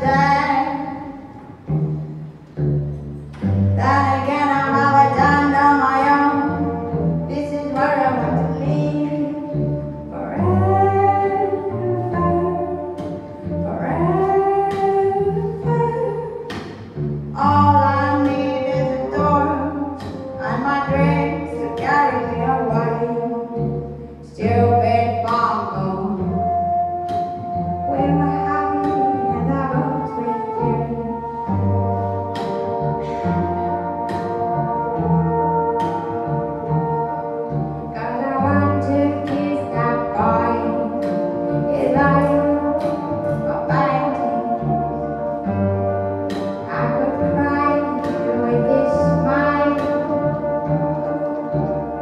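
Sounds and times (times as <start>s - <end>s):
bassoon: 0.0s - 52.0s
held melody notes: 0.0s - 52.0s
low bowed cello notes: 0.0s - 52.0s.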